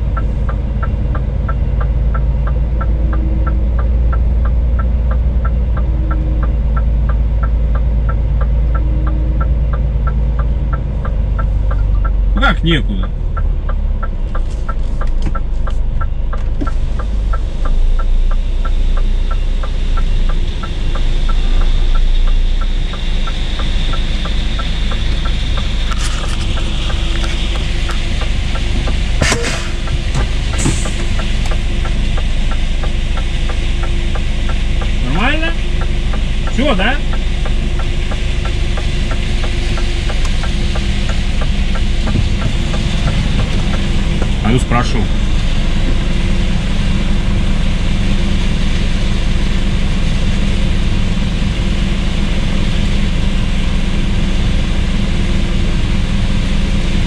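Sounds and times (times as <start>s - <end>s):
diesel truck engine droning: 0.0s - 57.0s.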